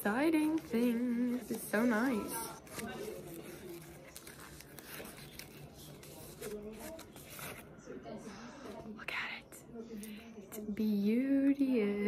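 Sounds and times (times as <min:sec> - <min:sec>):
soft murmured speech: 0:00.0 - 0:12.0
plastic wrap rustling and crinkling: 0:01.3 - 0:07.7.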